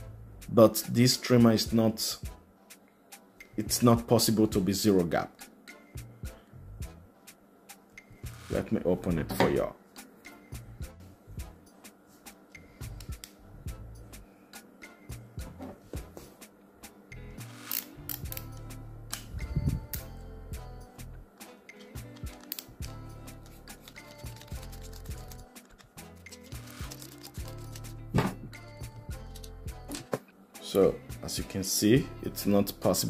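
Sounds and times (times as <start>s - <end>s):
soft background music: 0.0s - 33.0s
screwdriver clicks and scrapes: 17.5s - 19.3s, 22.0s - 27.9s.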